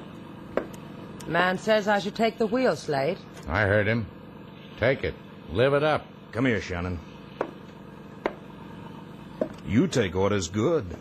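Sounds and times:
old radio recording hiss: 0:00.0 - 0:11.0.

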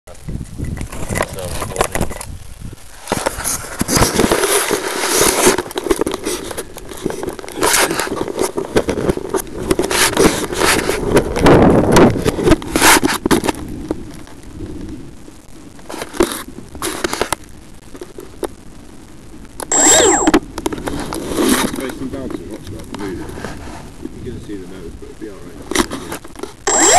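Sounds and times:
fingers rubbing on microphone: 0:00.5 - 0:13.6, 0:19.7 - 0:24.2, 0:25.3 - 0:26.9
thin high tone: 0:19.7 - 0:20.4, 0:26.7 - 0:26.9.

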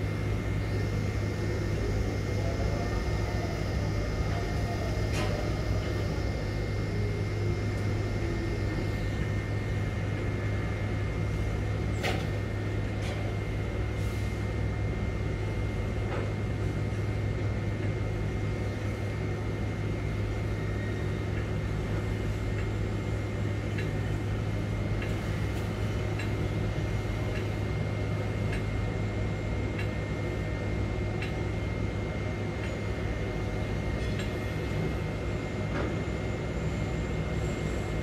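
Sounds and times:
low machinery hum: 0:00.0 - 0:38.0.

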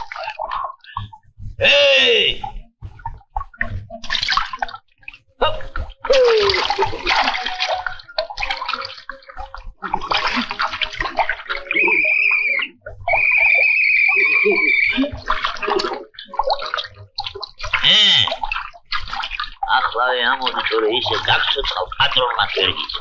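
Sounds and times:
water splashing and sloshing: 0:00.0 - 0:23.0
cartoon character vocal sounds: 0:06.1 - 0:06.8
high whistle-like tone: 0:11.5 - 0:15.1.

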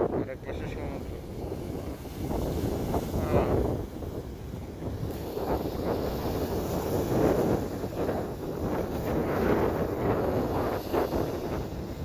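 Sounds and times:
waves breaking against seawall: 0:00.0 - 0:12.0
wind buffeting microphone: 0:00.0 - 0:12.0.

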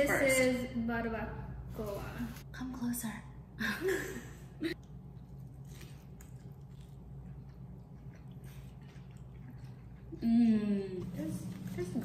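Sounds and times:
low steady hum: 0:00.0 - 0:12.0
wet chewing: 0:04.8 - 0:10.2.

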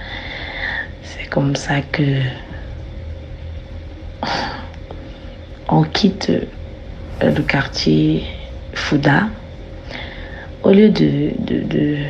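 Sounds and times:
low rumble: 0:06.0 - 0:10.6
faint hum: 0:06.1 - 0:10.5.

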